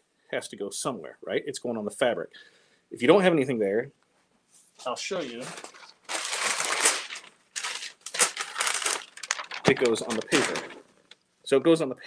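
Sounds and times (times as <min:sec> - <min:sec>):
paper rustling and crinkling: 0:04.8 - 0:10.9.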